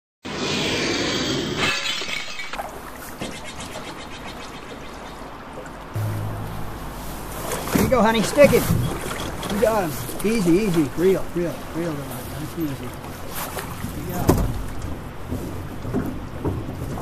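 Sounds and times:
intro music: 6.0 - 8.4.

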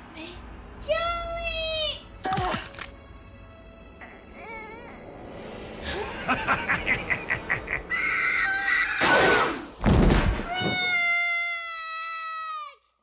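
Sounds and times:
man laughing: 5.8 - 8.2
high yowling screech: 7.9 - 9.7
loud thud: 9.0 - 10.8.

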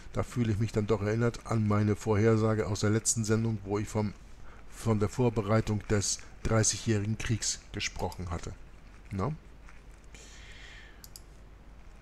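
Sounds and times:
soft breathy hiss: 0.0 - 12.0
faint quick clicks: 11.0 - 11.4.

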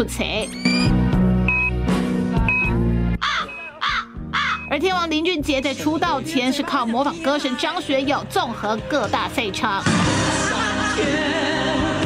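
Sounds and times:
instrumental music with low bass: 0.0 - 12.0
short high beep: 0.4 - 1.7, 2.5 - 2.8, 3.4 - 3.8.

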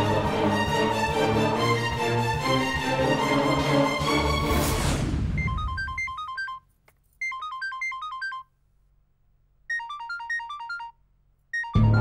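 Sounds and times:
film background music: 0.0 - 5.5
phone ringtone beeping: 5.4 - 8.5, 9.7 - 12.0.

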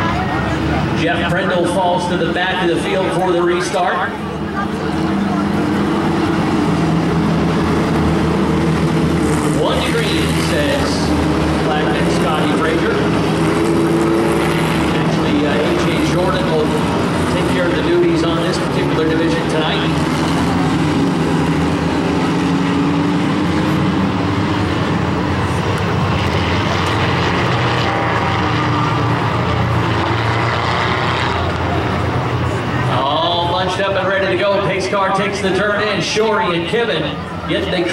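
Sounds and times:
race car engines droning: 0.0 - 37.9.

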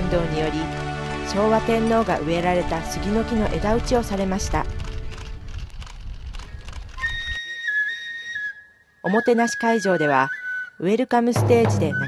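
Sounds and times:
scattered clicks: 4.8 - 7.1
flute playing long high notes: 7.0 - 10.7.

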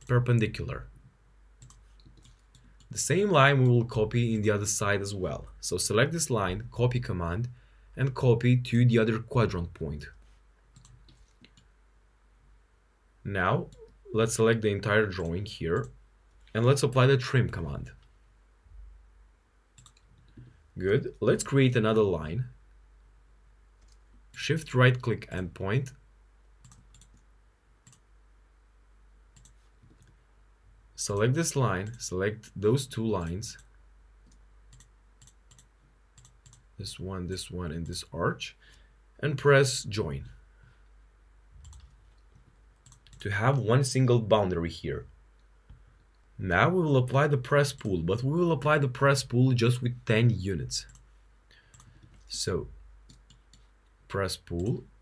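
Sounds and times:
computer mouse clicks: 1.6 - 2.9, 10.7 - 11.7, 19.8 - 20.5, 23.8 - 24.1, 26.6 - 27.2, 27.8 - 28.0, 29.4 - 30.2, 33.6 - 36.6, 41.6 - 43.2, 50.9 - 51.1, 51.7 - 52.2.

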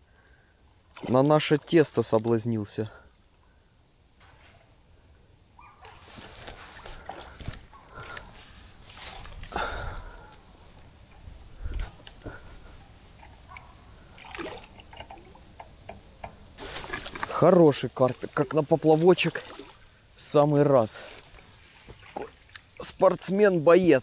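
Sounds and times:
water splashing and sloshing: 0.2 - 24.0.

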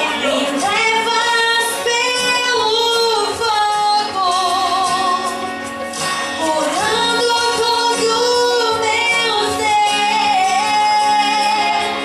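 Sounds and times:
woman singing into microphone: 0.0 - 5.6, 6.2 - 12.0.

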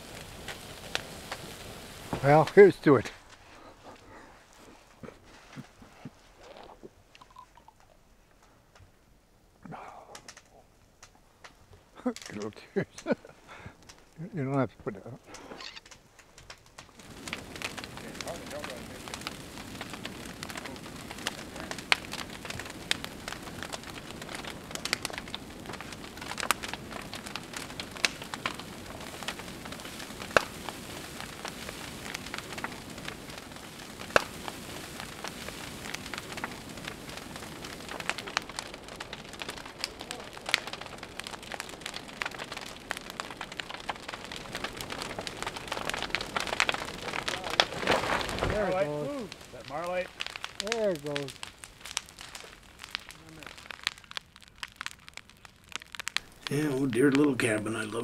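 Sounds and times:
fire rushing and crackling: 0.0 - 8.9, 9.7 - 58.0
burning timber popping: 0.0 - 9.0, 9.6 - 58.0.

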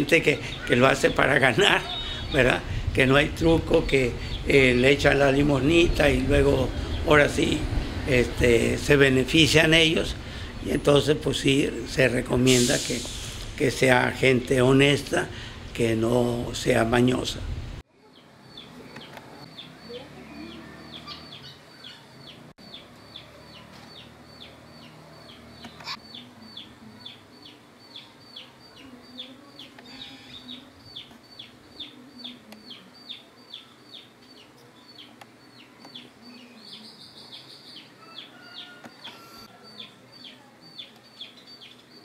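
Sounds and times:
bird peeping: 1.6 - 2.6, 18.1 - 42.0.

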